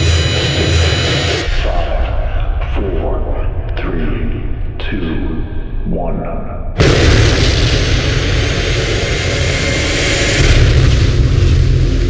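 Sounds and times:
music: 0:00.0 - 0:02.8, 0:10.0 - 0:12.0
cinematic hit: 0:06.8 - 0:12.0.

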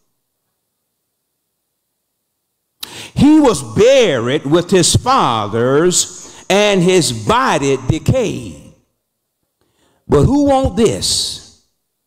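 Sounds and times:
man speaking: 0:03.1 - 0:08.8, 0:10.1 - 0:11.6.

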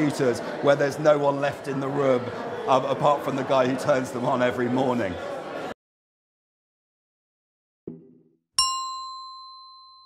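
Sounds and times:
bright bell-like ding: 0:08.6 - 0:10.0.

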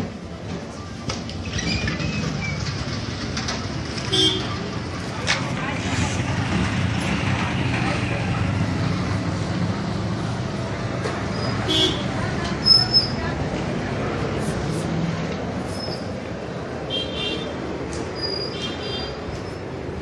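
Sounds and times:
traffic and engine noise: 0:00.0 - 0:20.0.

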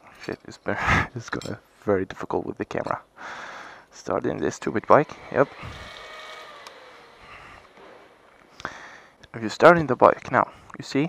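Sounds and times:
faint fuel pump whine: 0:04.6 - 0:09.2.

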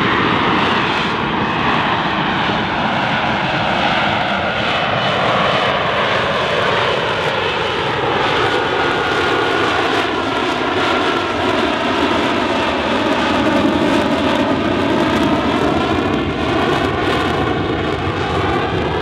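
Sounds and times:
jet engine roar with whine: 0:00.0 - 0:19.0.

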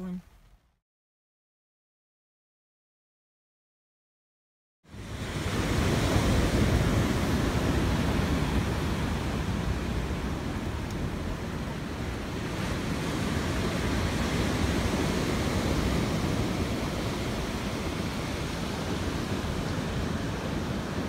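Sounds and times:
wind buffeting the microphone: 0:04.9 - 0:21.0.

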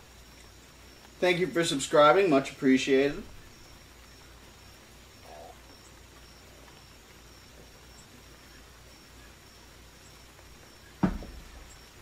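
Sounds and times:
high insect trill: 0:00.0 - 0:12.0
low hum and hiss: 0:00.0 - 0:12.0
faint animal call: 0:05.2 - 0:06.7.

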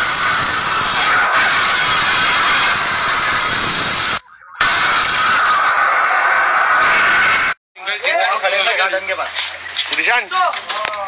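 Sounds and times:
jet airliner turbines whining: 0:00.0 - 0:07.6.

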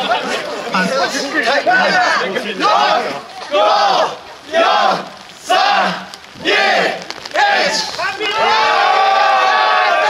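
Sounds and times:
men shouting a call together: 0:00.0 - 0:10.0.

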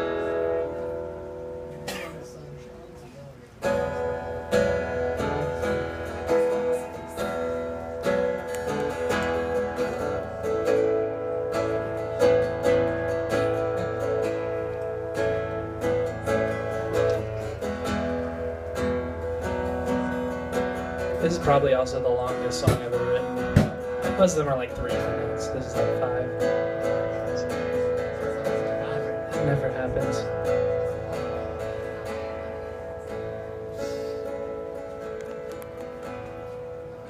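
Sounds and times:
acoustic guitar chords: 0:00.0 - 0:37.0.

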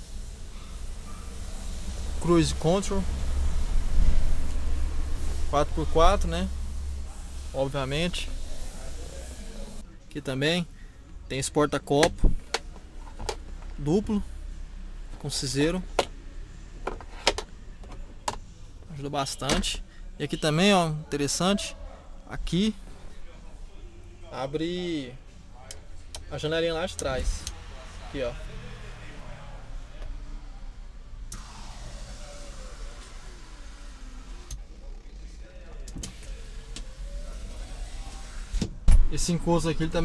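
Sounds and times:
electric window motor whine: 0:31.3 - 0:35.0.

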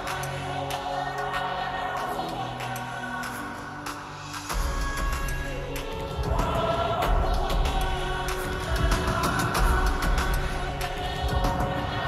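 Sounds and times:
vocal-like synth chords: 0:00.0 - 0:12.0.

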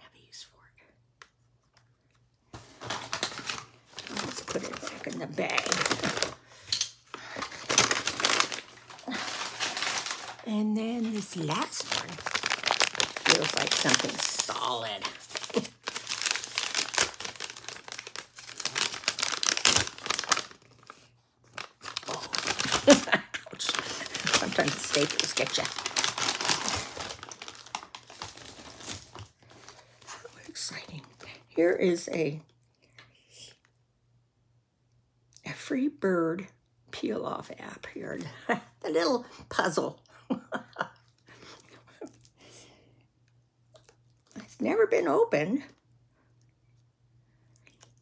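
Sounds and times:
paper bag rustling and crinkling: 0:02.6 - 0:06.4, 0:07.1 - 0:30.4.

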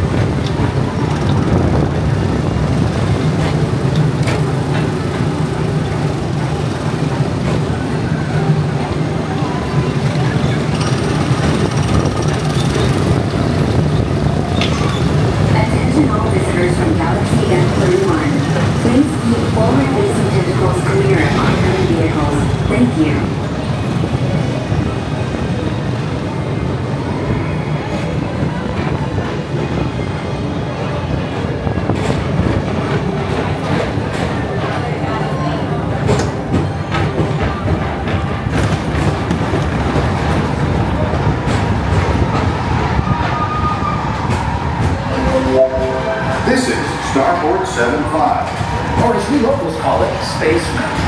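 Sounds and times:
crowd voices: 0:00.0 - 0:51.0
ride car low rumble: 0:00.0 - 0:51.0
background music: 0:45.0 - 0:47.3.

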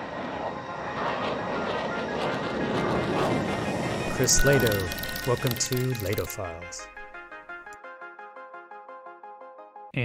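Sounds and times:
fighter jet engine flying past: 0:00.0 - 0:06.8.

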